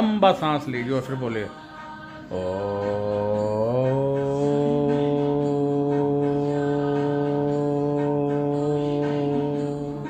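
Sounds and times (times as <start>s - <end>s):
faint background music: 0.0s - 10.0s
man chanting om: 2.3s - 10.0s.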